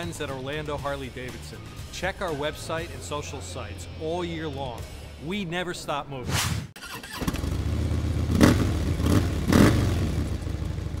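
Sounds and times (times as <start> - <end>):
motorcycle engine rumbling: 6.8 - 11.0.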